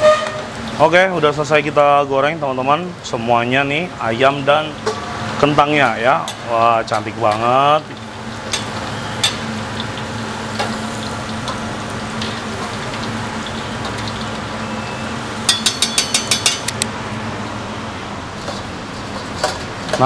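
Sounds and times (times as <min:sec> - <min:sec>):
food sizzling in deep oil: 0:00.0 - 0:20.0
ladle clinking against strainer: 0:15.5 - 0:16.8.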